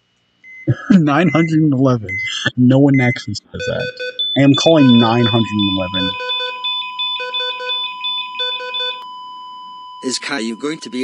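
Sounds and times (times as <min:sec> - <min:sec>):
steady high tone: 0:00.7 - 0:09.0, 0:10.0 - 0:11.0
electronic telephone ringing: 0:03.9 - 0:09.1.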